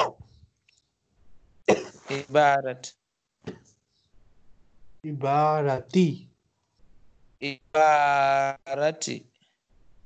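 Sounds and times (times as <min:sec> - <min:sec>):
person speaking over video call: 0:01.7 - 0:02.9, 0:05.1 - 0:06.3, 0:07.4 - 0:09.2.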